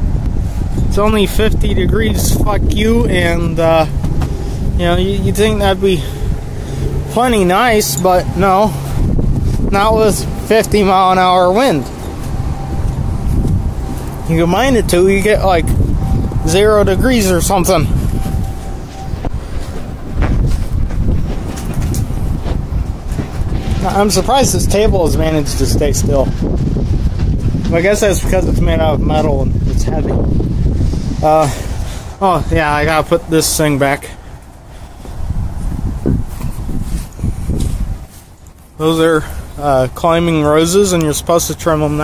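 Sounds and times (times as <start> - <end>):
gusty wind buffeting microphone: 0.0 - 42.0.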